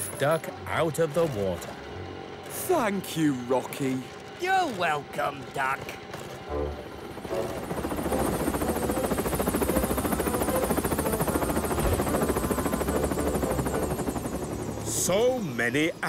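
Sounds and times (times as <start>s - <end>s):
background music: 0.0s - 5.4s, 6.4s - 16.0s
helicopter rotor chopping: 0.0s - 16.0s.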